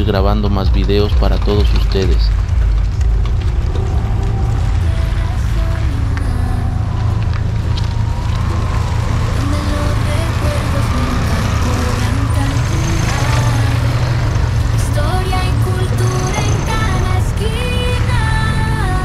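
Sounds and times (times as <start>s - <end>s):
music playing: 0.0s - 19.0s
quad bike passing: 0.0s - 19.0s
vehicle engines rumbling: 0.0s - 19.0s.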